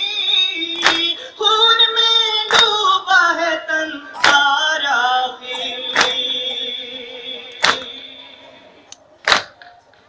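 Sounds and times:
crowd slapping chests: 0.6 - 1.2, 2.3 - 3.0, 4.2 - 4.8, 5.5 - 8.2, 8.9 - 10.0.

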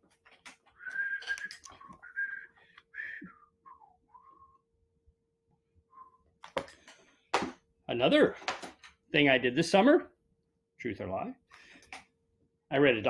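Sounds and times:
person whistling: 0.8 - 4.6, 5.9 - 6.3.

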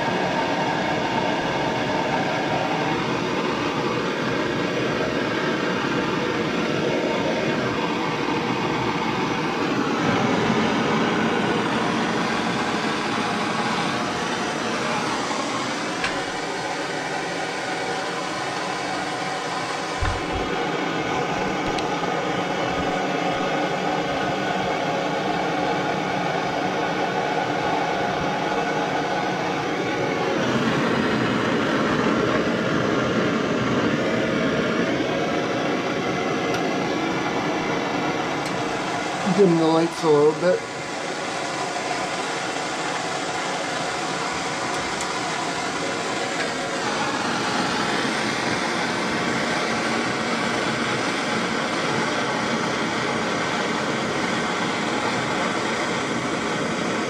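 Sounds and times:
torch flame hissing: 0.0 - 57.0.

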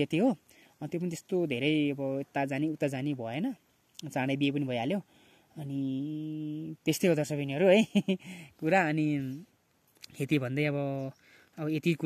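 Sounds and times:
man humming flat vowel: 5.6 - 6.8.

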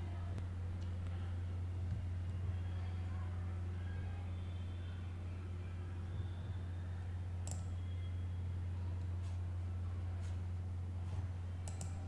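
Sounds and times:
steady low hum: 0.0 - 12.0
faint clicks: 7.4 - 7.8, 11.6 - 12.0.

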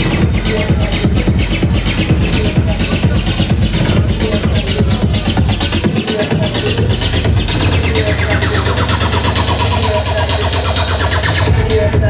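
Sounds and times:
loud techno music: 0.0 - 12.0.

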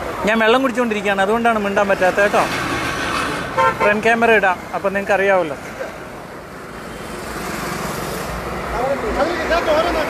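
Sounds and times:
highway traffic passing: 0.0 - 10.0.

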